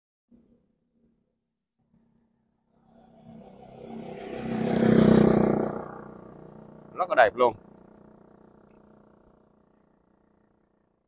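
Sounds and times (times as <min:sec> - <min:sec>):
vehicle passing by: 0:02.8 - 0:09.2.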